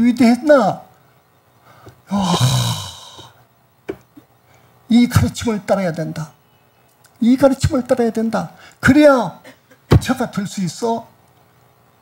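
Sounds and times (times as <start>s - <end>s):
man sighing: 2.1s - 3.4s.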